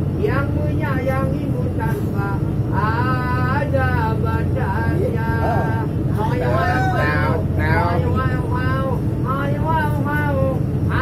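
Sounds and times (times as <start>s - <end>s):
ferry engine drone: 0.0s - 11.0s.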